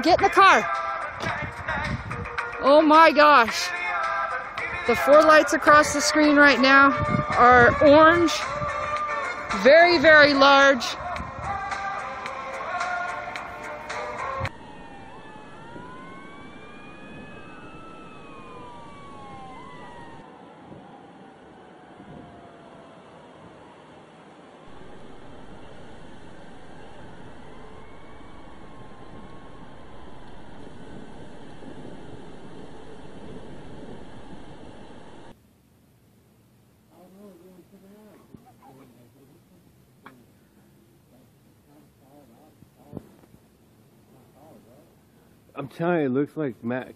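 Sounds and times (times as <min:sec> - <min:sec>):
steady outdoor hiss: 0:00.0 - 0:46.9
distant wailing sounds: 0:10.3 - 0:35.3.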